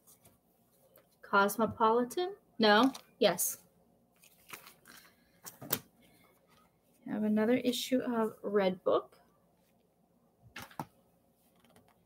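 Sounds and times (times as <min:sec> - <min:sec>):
magazine paper handled: 0:04.2 - 0:05.9.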